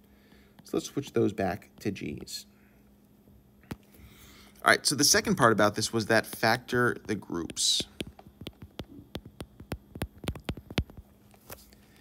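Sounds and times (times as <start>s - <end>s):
stylus tapping on glass screen: 6.2s - 11.1s.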